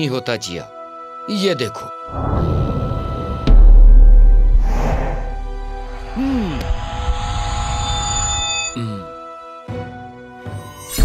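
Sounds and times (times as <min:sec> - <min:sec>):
background music: 0:00.0 - 0:11.0
high ringing tones: 0:07.4 - 0:08.8.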